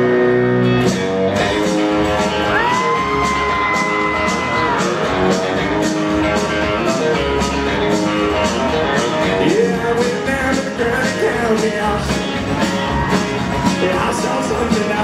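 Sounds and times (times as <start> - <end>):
country-rock band playing: 0.0 - 15.0.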